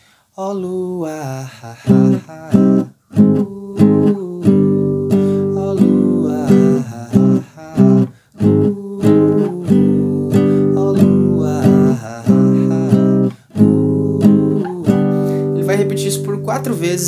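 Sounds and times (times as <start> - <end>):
classical guitar strumming chords: 1.8 - 17.0.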